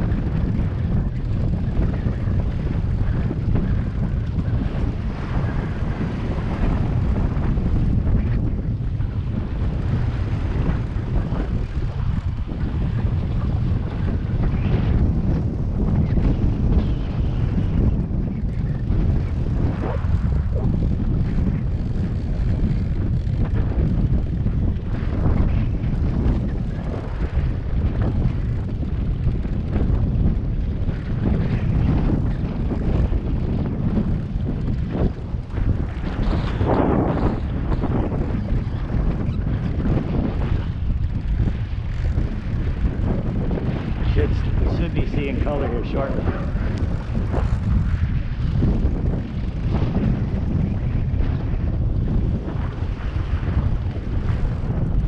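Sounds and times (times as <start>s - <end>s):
outboard motor rumble: 0.0s - 55.0s
sea against hull: 0.0s - 55.0s
wind buffeting microphone: 0.0s - 55.0s.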